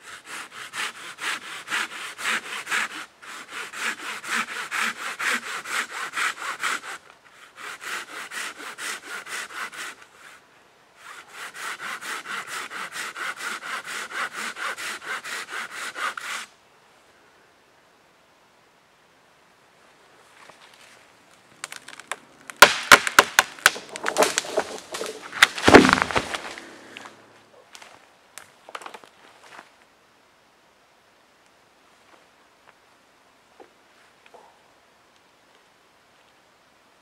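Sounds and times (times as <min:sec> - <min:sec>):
hand saw cutting wood: 0:00.0 - 0:10.4, 0:11.0 - 0:16.5, 0:22.9 - 0:26.6.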